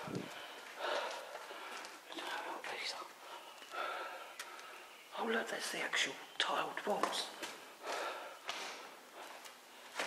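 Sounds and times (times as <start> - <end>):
person whispering: 2.0 - 3.6, 5.1 - 7.4.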